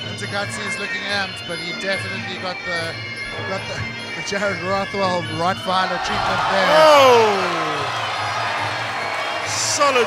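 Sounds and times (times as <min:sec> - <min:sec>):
music: 0:00.0 - 0:10.0
arena crowd noise: 0:05.6 - 0:10.0
man's drawn-out oh: 0:06.5 - 0:07.9.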